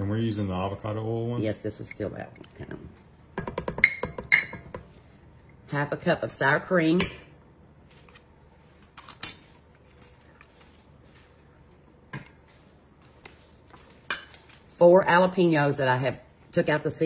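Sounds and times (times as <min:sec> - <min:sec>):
utensils clinking on metal bowl: 0:03.4 - 0:04.8.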